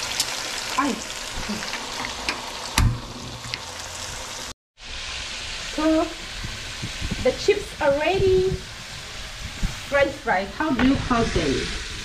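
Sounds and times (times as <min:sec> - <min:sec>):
loud thump: 0:02.8 - 0:03.3.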